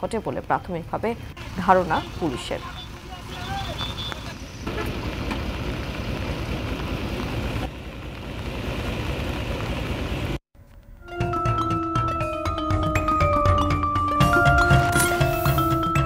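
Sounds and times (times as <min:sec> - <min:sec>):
vehicle engine running: 0:01.1 - 0:10.4.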